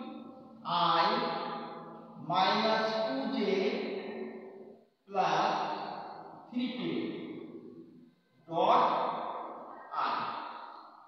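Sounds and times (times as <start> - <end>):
man speaking drawn-out syllables: 0.7 - 1.4, 2.2 - 3.8, 5.1 - 5.6, 6.6 - 7.1, 8.5 - 9.0, 9.7 - 10.2.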